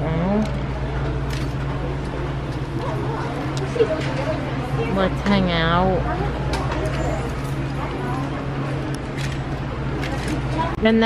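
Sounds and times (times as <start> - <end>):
murmur of voices: 0.0 - 11.0
steady low hum: 0.0 - 11.0.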